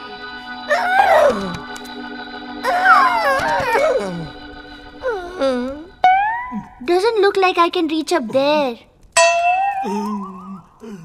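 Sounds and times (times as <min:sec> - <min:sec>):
bell-like chime wobbling in pitch: 0:06.0 - 0:06.8, 0:09.2 - 0:10.4
character saying hmm: 0:09.8 - 0:10.7.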